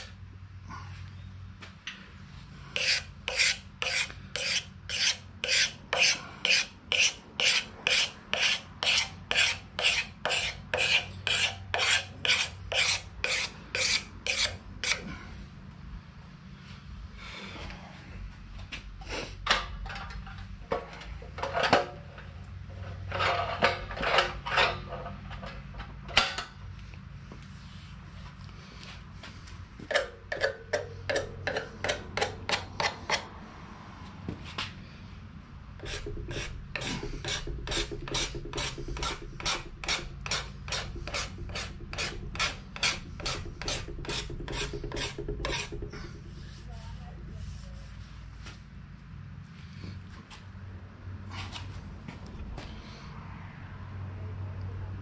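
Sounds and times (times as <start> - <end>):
hand tool strokes on wood: 2.7 - 15.1, 35.8 - 46.7.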